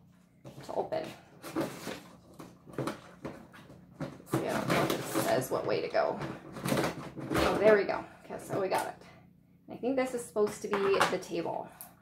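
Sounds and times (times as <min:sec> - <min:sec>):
plastic lid scraping: 0:01.4 - 0:08.8.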